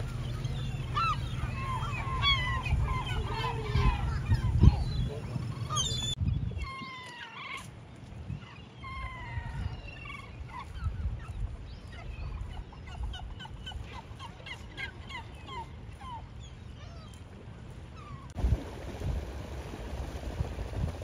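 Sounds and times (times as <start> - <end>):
wind rumble on microphone: 0.0 - 7.0, 7.8 - 14.3, 17.4 - 21.0
gulls calling: 0.0 - 18.4.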